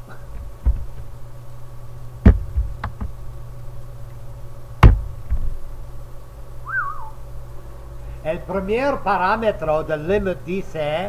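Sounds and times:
steady low hum: 0:00.0 - 0:11.0
soft low thump: 0:00.4 - 0:01.1, 0:02.2 - 0:03.2, 0:04.8 - 0:05.5
short whistle-like chirp: 0:06.6 - 0:07.2.

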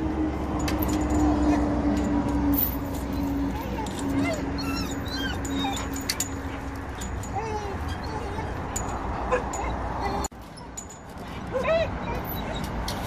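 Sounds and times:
dog whining and whimpering: 0:03.1 - 0:12.9.

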